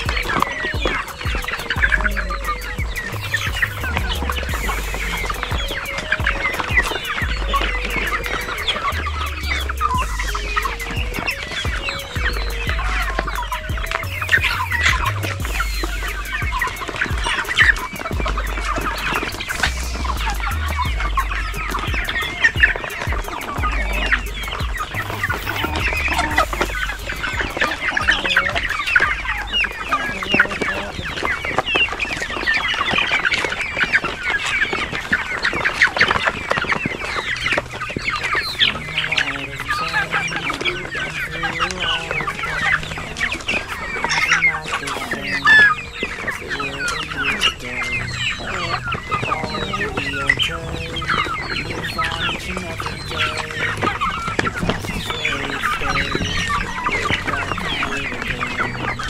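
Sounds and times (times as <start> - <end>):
chickens clucking and chirping: 0.0 - 59.0.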